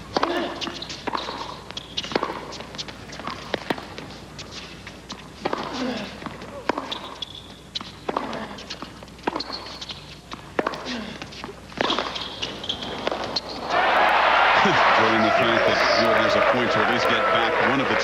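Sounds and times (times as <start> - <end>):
rackets striking tennis ball: 0.0 - 14.2
shoe squeaks: 0.3 - 2.6, 6.8 - 8.0, 8.6 - 10.2, 11.8 - 13.7
crowd cheering and applause: 13.6 - 18.0.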